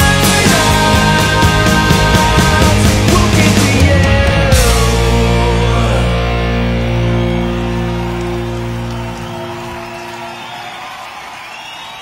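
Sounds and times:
bass guitar chord: 0.0 - 9.6
electric guitars ringing chord: 3.9 - 10.7.

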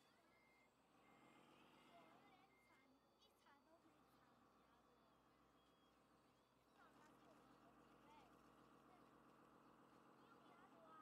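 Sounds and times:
faint electronic reversing beeps: 0.0 - 0.8, 5.5 - 6.5.

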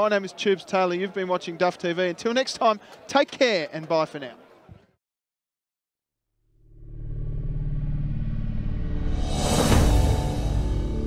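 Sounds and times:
low rumbling drone: 6.6 - 11.0.

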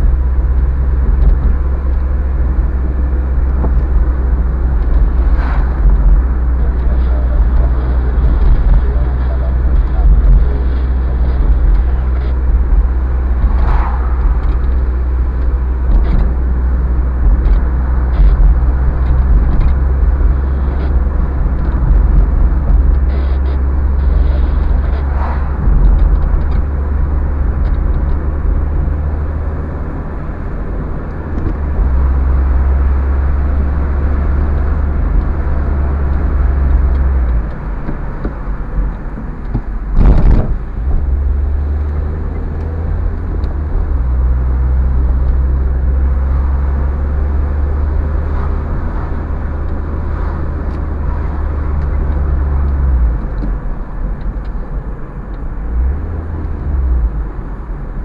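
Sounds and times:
car engine and road noise: 0.0 - 58.0
sharp thump: 39.5 - 40.6.

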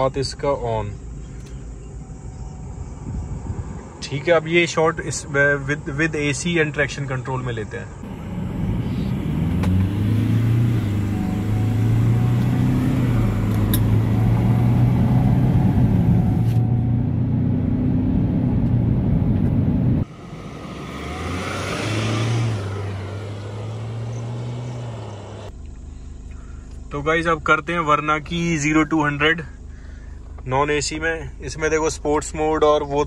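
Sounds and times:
diesel engine accelerating: 7.9 - 28.9
vehicle driving past on road: 8.0 - 25.5.

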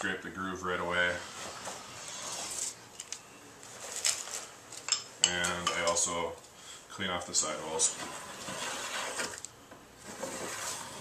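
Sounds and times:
ski wax scraping: 7.6 - 9.4, 10.0 - 11.0.

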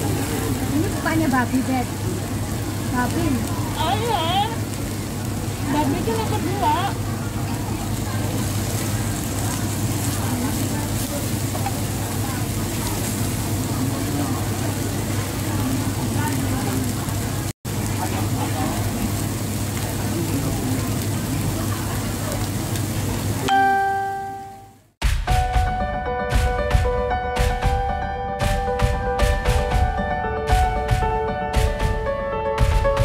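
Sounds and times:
faint indistinct chatter: 0.0 - 24.2
restaurant background noise: 0.0 - 25.0
bell-like chime ringing: 23.5 - 24.8.

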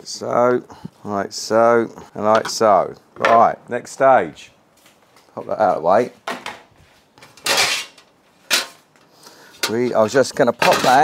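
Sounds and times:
metal tray clattering: 7.3 - 8.9, 9.5 - 11.0
metal tray scraping: 7.3 - 11.0.

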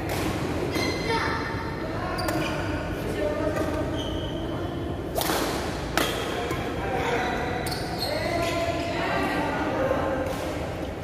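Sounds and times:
rackets hitting shuttlecock: 0.0 - 1.0, 5.1 - 6.8.

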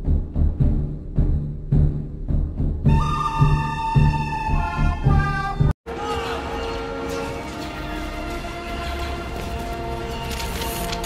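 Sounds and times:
booming low drum beat: 0.0 - 5.2.

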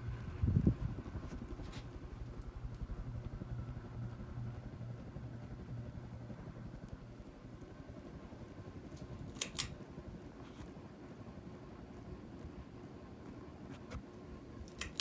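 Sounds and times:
ceiling fan motor humming: 0.0 - 15.0
sharp clicks: 9.0 - 9.8, 14.6 - 15.0.

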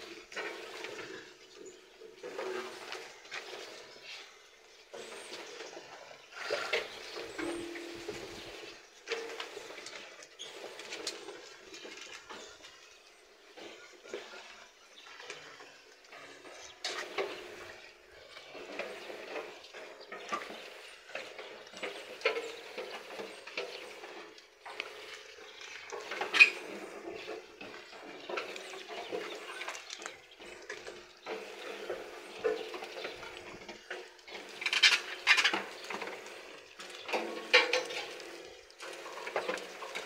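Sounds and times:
sheep crunching feed: 0.0 - 40.0
knocks and scrapes against tub: 16.2 - 40.0.

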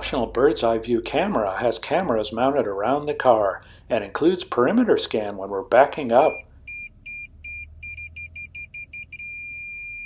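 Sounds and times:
parking sensor beeping: 6.2 - 10.0.

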